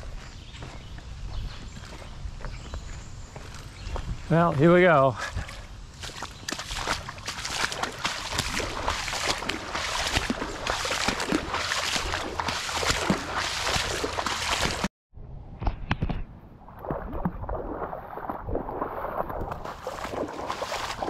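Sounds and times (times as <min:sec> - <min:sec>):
wading splashes in water: 0:04.8 - 0:14.9, 0:16.7 - 0:21.0.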